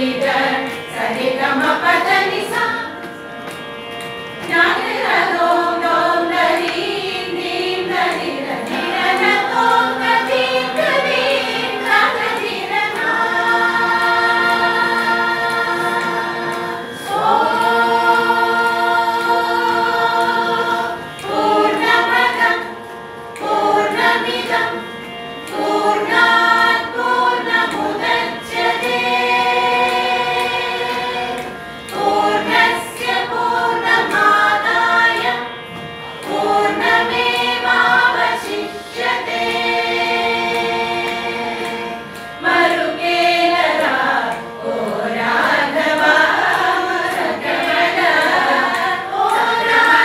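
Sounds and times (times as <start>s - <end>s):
women's choir singing: 0.0s - 3.6s, 4.3s - 50.0s.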